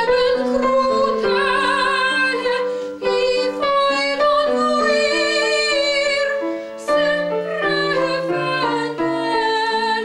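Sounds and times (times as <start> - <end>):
piano accompaniment: 0.0 - 10.0
woman singing operatically: 0.0 - 10.0.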